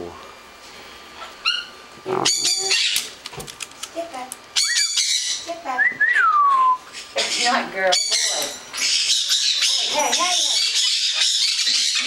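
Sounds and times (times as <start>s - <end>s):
parrot chirp: 1.2s - 3.1s, 4.5s - 5.6s, 6.9s - 12.0s
parrot rising call: 4.6s - 5.5s.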